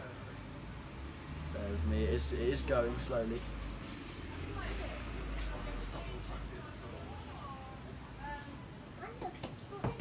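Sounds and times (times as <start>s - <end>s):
faint background voices: 3.2s - 10.0s.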